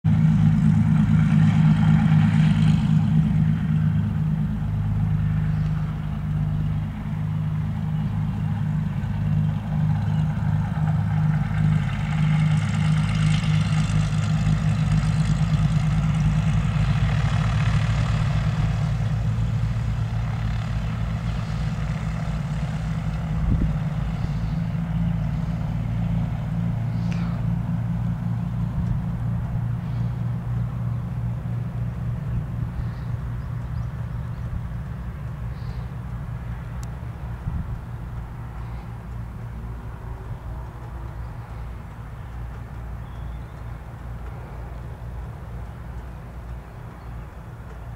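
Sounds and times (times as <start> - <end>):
propeller engines droning: 0.0 - 47.9.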